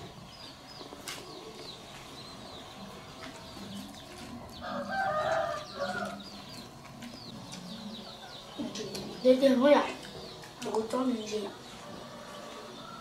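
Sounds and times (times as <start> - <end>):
high peeping chirps: 0.0 - 13.0.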